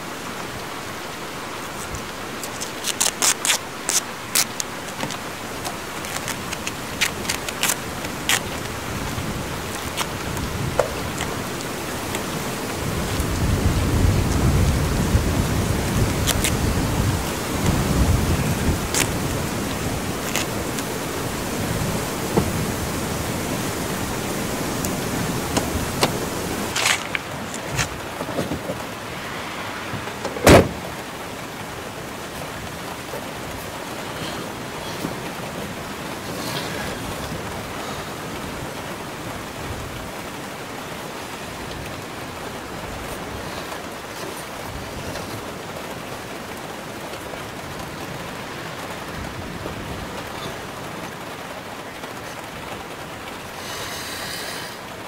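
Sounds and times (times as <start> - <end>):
low rumble of wind: 0.0 - 53.8
rain: 0.0 - 55.0
rain on a car roof: 0.0 - 55.0
loud thump: 29.9 - 30.8.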